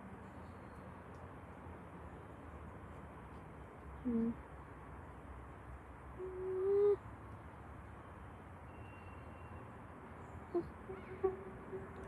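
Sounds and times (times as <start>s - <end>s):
distant steam locomotive whistle: 10.9s - 12.0s.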